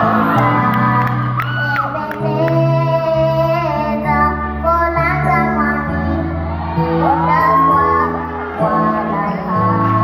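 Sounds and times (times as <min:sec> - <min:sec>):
girl singing into microphone: 0:00.0 - 0:10.0.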